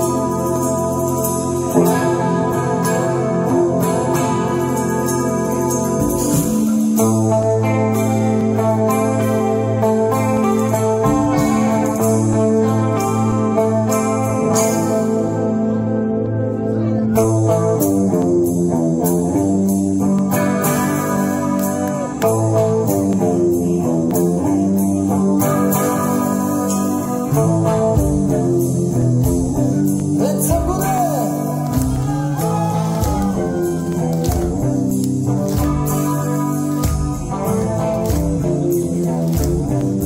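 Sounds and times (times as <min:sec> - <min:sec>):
heavy metal band playing live: 0:00.0 - 0:16.0, 0:17.0 - 0:40.0.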